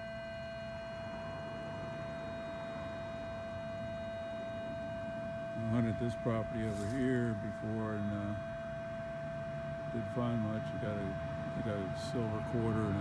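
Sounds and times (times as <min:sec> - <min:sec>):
metal detector steady tone: 0:05.5 - 0:08.5.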